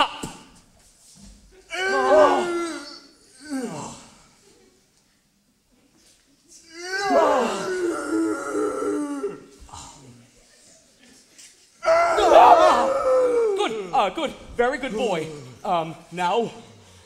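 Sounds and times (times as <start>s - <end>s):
man groaning: 1.7s - 4.2s, 6.8s - 9.9s, 11.8s - 14.1s.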